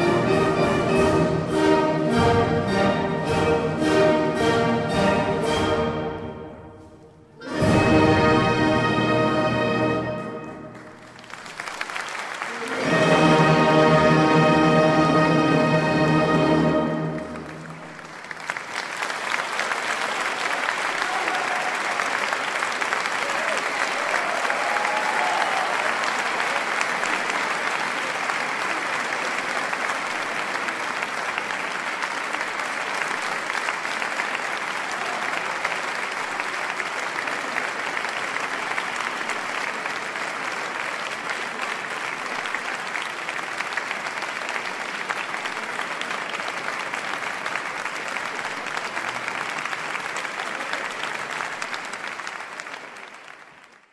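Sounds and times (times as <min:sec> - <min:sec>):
audience applauding: 0:07.4 - 0:53.9.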